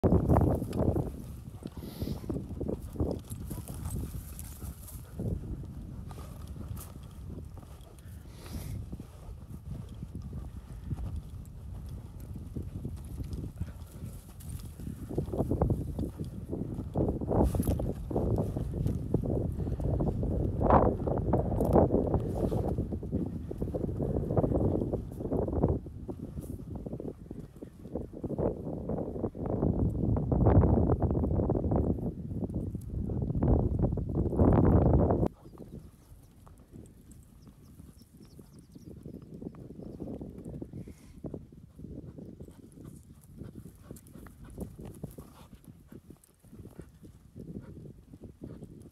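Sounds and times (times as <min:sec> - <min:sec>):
footsteps crunching on dry ground: 0:00.0 - 0:26.8.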